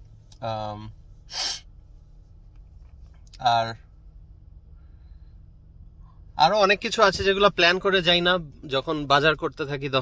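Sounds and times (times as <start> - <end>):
quick intake of breath: 1.2 - 1.7.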